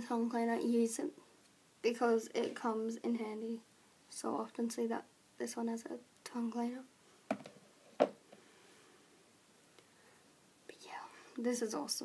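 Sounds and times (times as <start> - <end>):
woman whispering: 10.7 - 12.0.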